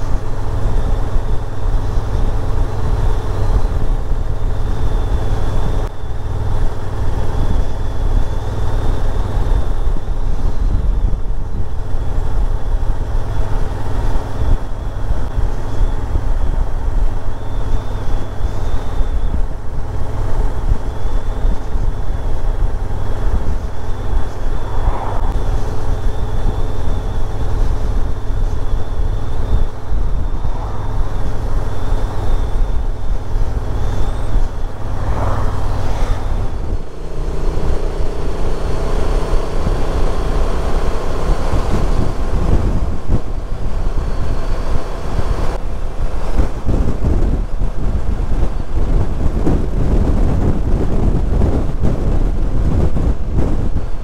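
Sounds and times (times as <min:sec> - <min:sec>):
motorcycle engine rumbling: 0:00.0 - 0:54.0
road noise: 0:00.0 - 0:54.0.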